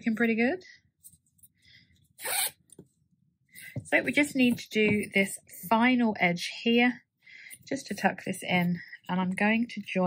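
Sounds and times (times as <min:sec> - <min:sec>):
zip pulled shut: 0:02.2 - 0:02.7.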